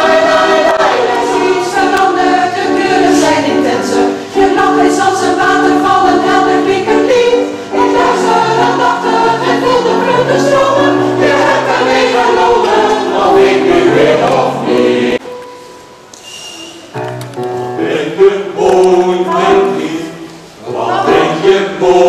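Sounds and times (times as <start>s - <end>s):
mixed choir singing in harmony: 0.0s - 15.2s, 17.7s - 22.0s.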